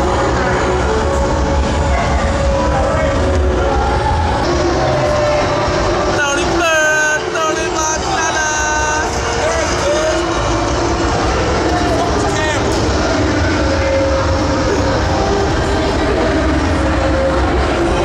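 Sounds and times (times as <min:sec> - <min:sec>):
crowd voices in hallway: 0:00.0 - 0:18.0.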